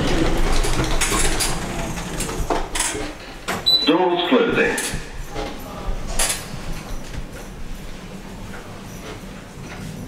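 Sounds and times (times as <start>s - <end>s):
wheelchair rolling and rattling: 0.0s - 3.8s, 4.7s - 10.0s.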